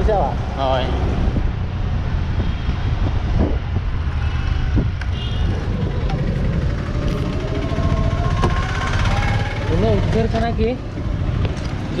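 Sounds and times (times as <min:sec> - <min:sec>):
street traffic: 0:00.0 - 0:12.0
wind rumble on microphone: 0:00.8 - 0:12.0
rising engine tone: 0:05.4 - 0:11.4.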